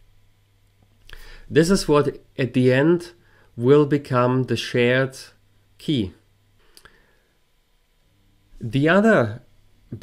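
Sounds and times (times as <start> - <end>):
man speaking: 1.5 - 6.3, 8.6 - 10.0.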